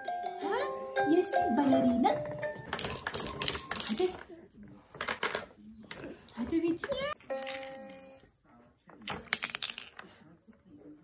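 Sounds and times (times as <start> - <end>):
plastic toy rattling: 2.7 - 4.4.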